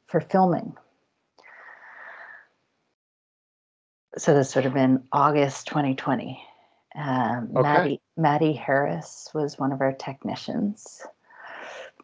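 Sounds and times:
person breathing in wheezily: 1.5s - 2.4s.

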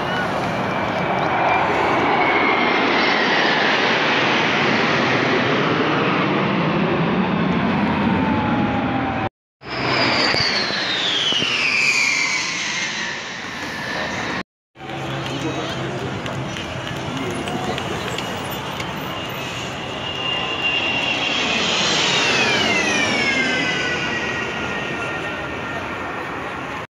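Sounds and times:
jet aircraft passing: 0.0s - 26.9s
jet roar with whine: 0.0s - 26.9s.

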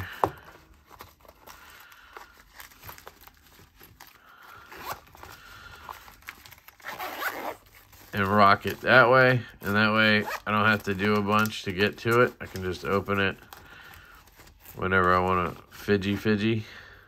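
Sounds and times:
zipper being worked: 4.6s - 8.8s, 9.6s - 10.8s.

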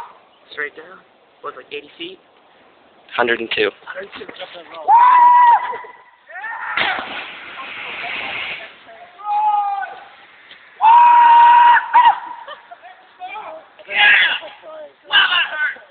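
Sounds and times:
person yelling: 4.8s - 7.0s, 9.0s - 10.1s
body splashing into water: 6.8s - 8.1s.

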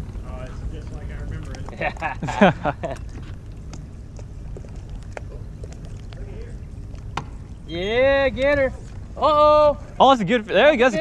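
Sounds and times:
light clicks and taps: 0.9s - 2.2s.

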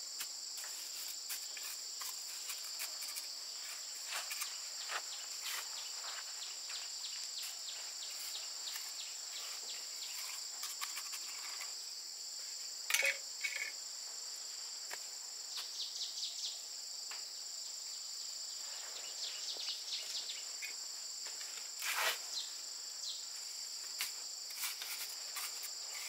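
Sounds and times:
insects chorus: 0.0s - 26.0s.

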